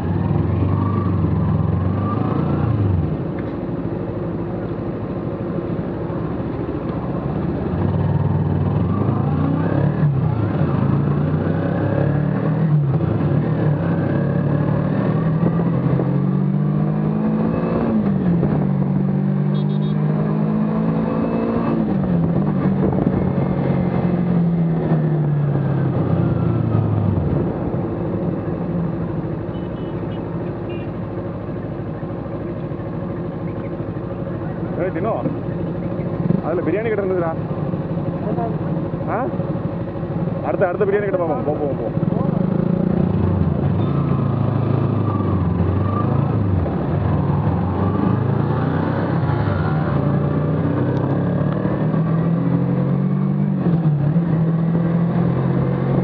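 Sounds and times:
motorcycle engine accelerating: 0:06.0 - 0:29.4, 0:31.3 - 0:56.0
wind noise: 0:22.1 - 0:23.6.

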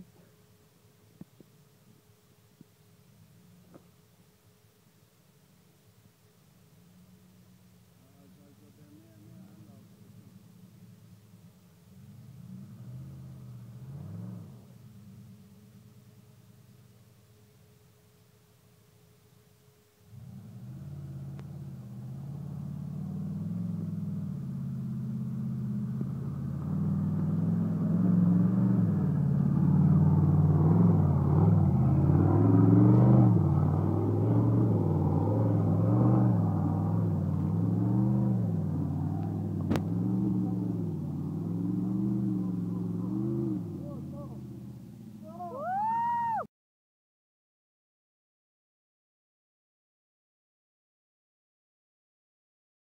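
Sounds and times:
off-road engine revving: 0:11.9 - 0:15.4, 0:20.1 - 0:45.9
rising and falling high tone: 0:45.2 - 0:46.5.

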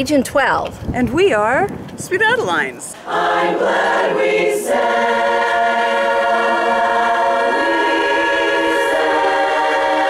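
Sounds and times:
women's chorus singing a cappella: 0:03.0 - 0:10.0.

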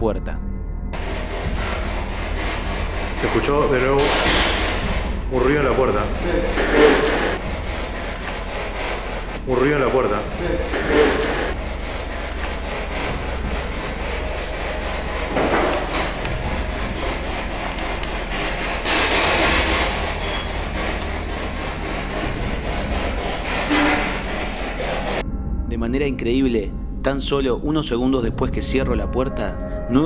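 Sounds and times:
choppy radio static: 0:05.4 - 0:25.2.

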